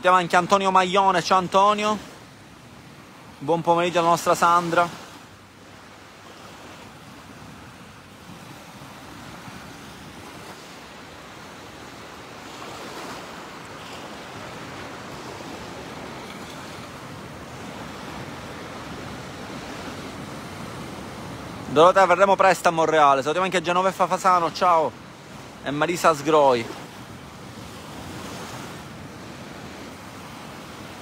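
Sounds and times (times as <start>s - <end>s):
small waves washing on shore: 0.0s - 31.0s.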